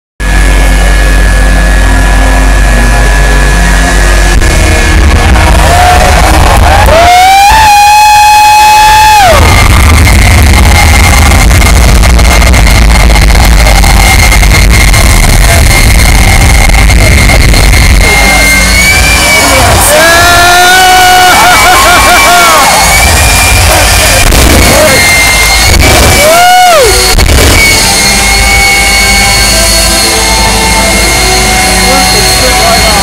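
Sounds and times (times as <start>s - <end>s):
jet engine roaring with afterburner: 0.2s - 8.4s, 9.2s - 33.0s
high turbine whine: 0.2s - 33.0s
whining tone rising and falling: 0.2s - 33.0s.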